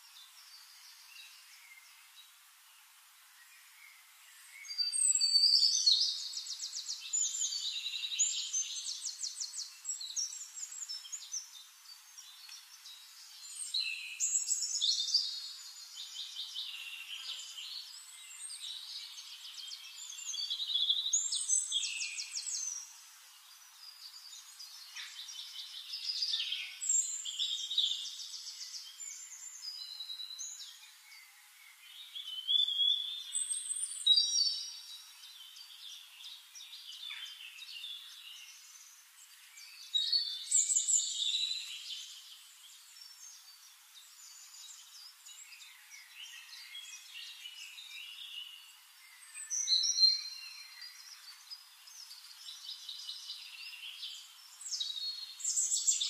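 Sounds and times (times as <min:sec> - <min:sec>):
faint bird chirps: 0:00.0 - 0:56.0
songbird trills and whistles: 0:03.5 - 0:23.0, 0:23.8 - 0:56.0.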